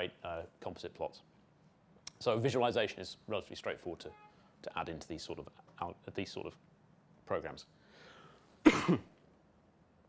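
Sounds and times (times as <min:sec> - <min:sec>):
man coughing: 0:08.6 - 0:09.2.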